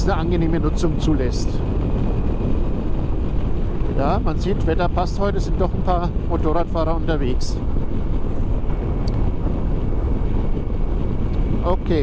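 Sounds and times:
motorcycle engine drone: 0.0 - 12.0
wind rushing over microphone: 0.0 - 12.0.

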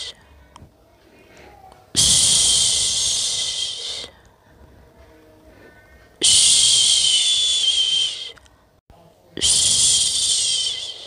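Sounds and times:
person shushing: 1.4 - 4.2, 6.2 - 8.4, 9.4 - 11.0.

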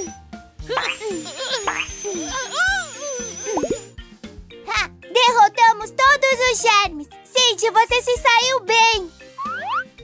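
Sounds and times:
cartoon dental drill whine: 0.0 - 4.0
children's background music: 0.0 - 10.0
squeaky cartoon character cries: 0.7 - 3.6.

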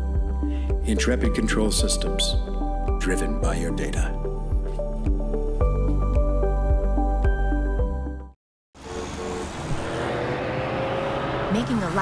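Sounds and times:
music: 0.0 - 8.4
car road and tyre noise: 8.8 - 12.0.

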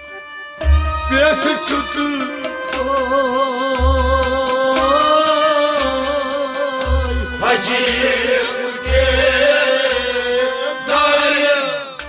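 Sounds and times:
instrumental drone: 0.0 - 12.0
low drum beats: 0.6 - 6.2, 6.8 - 8.3, 8.9 - 10.1
man singing: 1.0 - 12.0.

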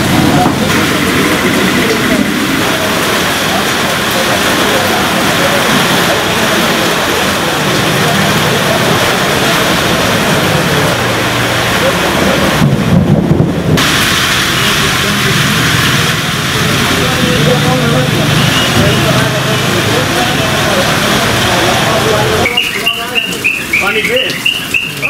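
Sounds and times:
heavy rain on standing water: 0.0 - 25.0.

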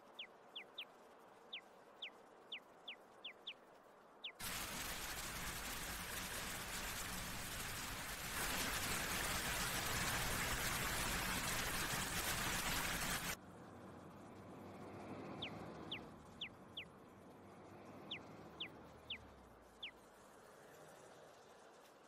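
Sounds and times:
outdoor ambience: 0.0 - 22.0
fountain water splashing: 4.4 - 13.4.

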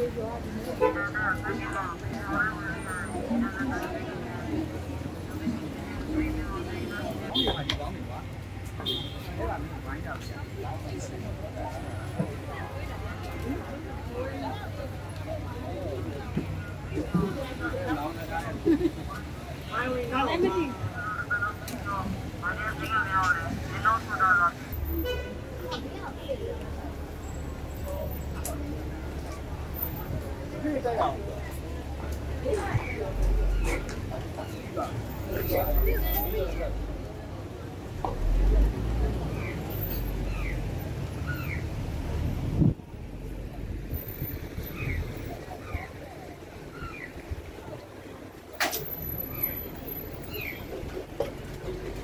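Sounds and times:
people talking: 0.0 - 41.4
traffic noise: 0.0 - 52.0
low vehicle rumble: 20.7 - 52.0.

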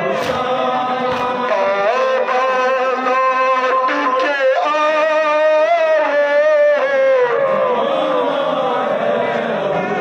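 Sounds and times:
men chanting in unison: 0.0 - 10.0
hands slapping chests: 0.2 - 1.4.

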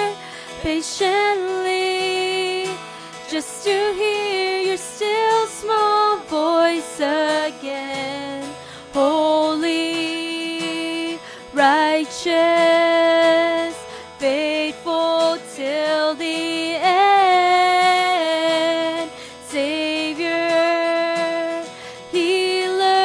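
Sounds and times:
woman singing slow melody: 0.0 - 23.0.

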